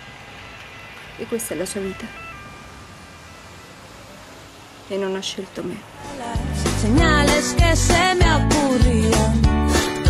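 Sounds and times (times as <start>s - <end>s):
street traffic hum: 0.0s - 9.5s.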